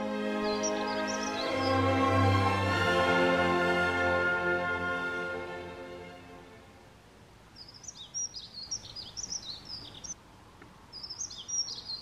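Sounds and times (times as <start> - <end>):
orchestral music: 0.0 - 6.8
songbird chirping and warbling: 0.0 - 6.8, 7.5 - 10.2, 10.9 - 12.0.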